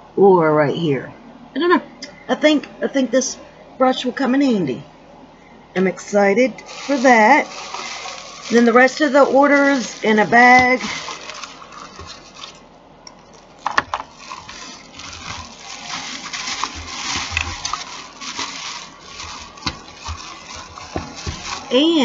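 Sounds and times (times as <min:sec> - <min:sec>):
plastic packaging crinkling: 0:06.6 - 0:22.0.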